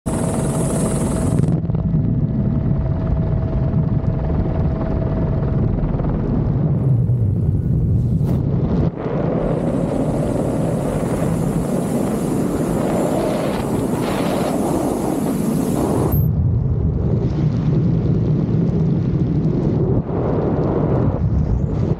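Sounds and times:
thin high whine: 0:00.1 - 0:01.6, 0:09.3 - 0:16.3
helicopter noise: 0:00.1 - 0:16.3
wind rushing over microphone: 0:00.1 - 0:21.9.

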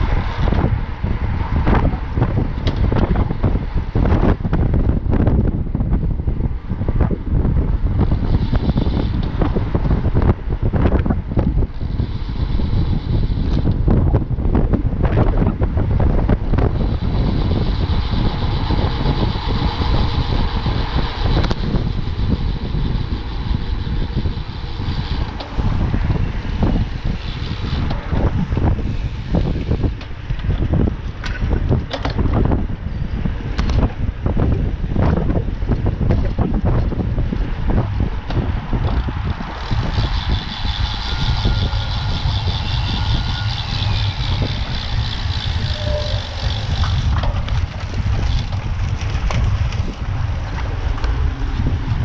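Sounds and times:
tyre and road noise: 0:00.0 - 0:52.0
wind buffeting microphone: 0:00.0 - 0:52.0.

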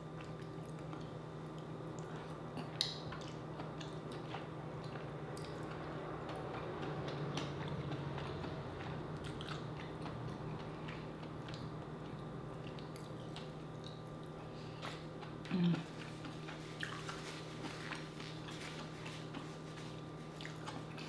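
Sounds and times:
close-up chewing: 0:00.1 - 0:21.0.

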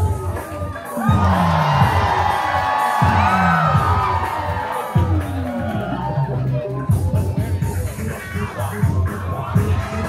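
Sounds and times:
crowd cheering and shouting: 0:00.0 - 0:10.0
loud music with bass sweep: 0:00.0 - 0:10.0.

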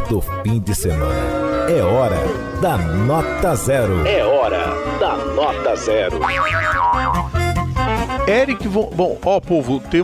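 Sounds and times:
comic music stinger: 0:01.0 - 0:07.3.

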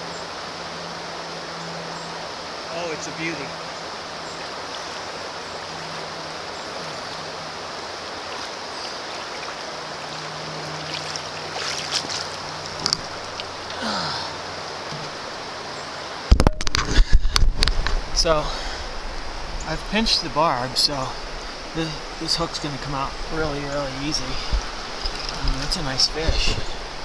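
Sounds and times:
river water flowing: 0:00.0 - 0:27.0
small water splashes: 0:03.8 - 0:15.5.

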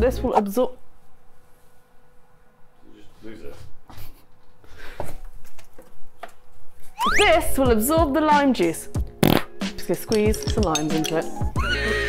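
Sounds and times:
objects rubbing: 0:09.2 - 0:11.7
objects knocking: 0:09.6 - 0:11.6.

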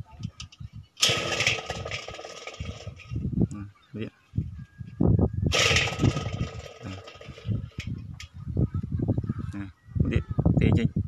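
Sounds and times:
metal bowl scraping clatter: 0:01.0 - 0:03.2, 0:05.5 - 0:08.0.

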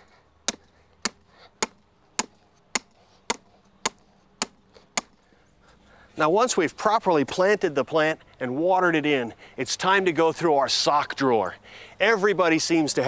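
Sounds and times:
hammer striking steel stake: 0:00.4 - 0:05.2.

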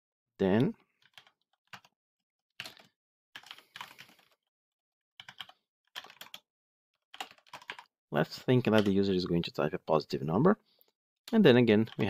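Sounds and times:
typing on computer keyboard: 0:01.0 - 0:01.9, 0:02.6 - 0:04.4, 0:05.2 - 0:06.4, 0:07.1 - 0:07.9, 0:08.7 - 0:09.0.

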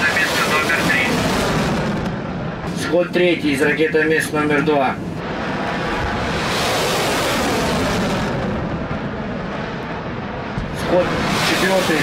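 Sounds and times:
missile booster roar: 0:00.0 - 0:02.9, 0:05.0 - 0:12.0.

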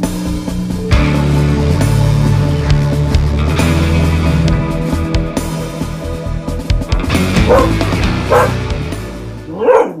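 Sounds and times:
music: 0:00.0 - 0:10.0
dog barking: 0:07.4 - 0:08.6, 0:09.5 - 0:10.0.

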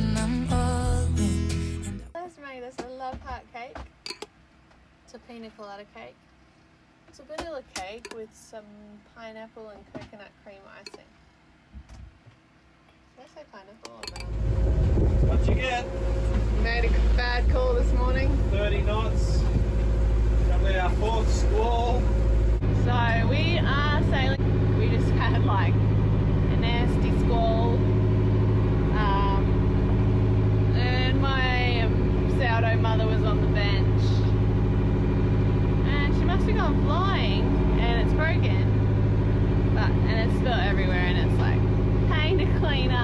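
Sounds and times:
woman talking: 0:02.2 - 0:03.8, 0:05.1 - 0:06.2, 0:07.1 - 0:11.1, 0:13.2 - 0:14.1, 0:16.5 - 0:18.4, 0:22.8 - 0:25.8, 0:26.4 - 0:27.8, 0:28.9 - 0:29.6, 0:30.7 - 0:34.4, 0:35.8 - 0:38.8, 0:39.7 - 0:43.0
low drone: 0:14.1 - 0:43.0.

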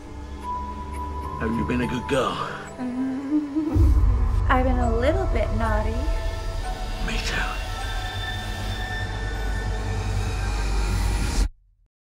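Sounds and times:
deep steady rumble: 0:02.9 - 0:11.2
screeching metallic drone: 0:03.4 - 0:11.4.

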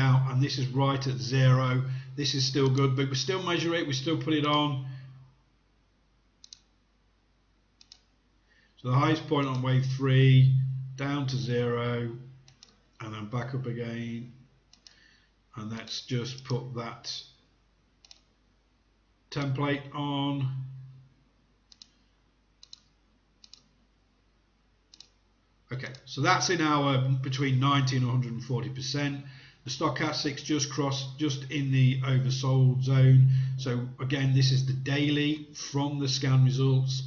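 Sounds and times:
computer mouse clicks: 0:06.4 - 0:06.7, 0:07.8 - 0:08.1, 0:12.4 - 0:12.9, 0:14.7 - 0:15.0, 0:16.3 - 0:16.6, 0:18.0 - 0:18.4, 0:21.7 - 0:23.8, 0:24.9 - 0:25.2.

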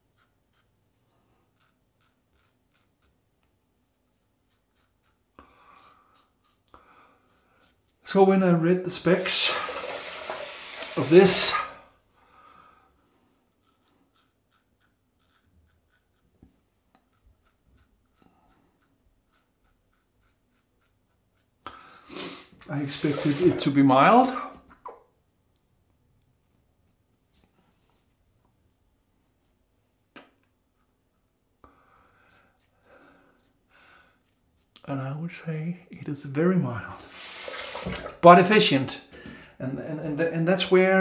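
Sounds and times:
razor scraping stubble: 0:00.0 - 0:11.7, 0:13.5 - 0:21.6, 0:22.6 - 0:24.3, 0:32.2 - 0:35.4.

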